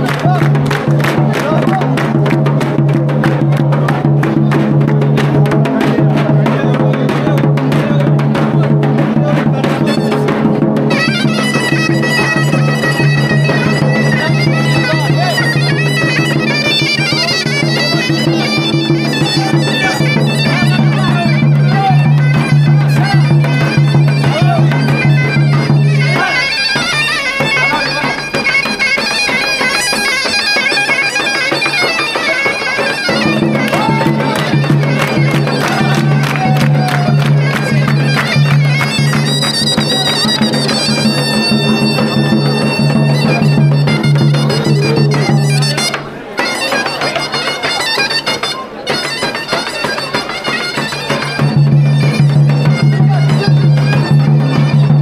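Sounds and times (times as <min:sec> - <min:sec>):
drum beat: 0:00.0 - 0:47.7, 0:49.5 - 0:55.0
droning melody instrument: 0:10.9 - 0:47.4.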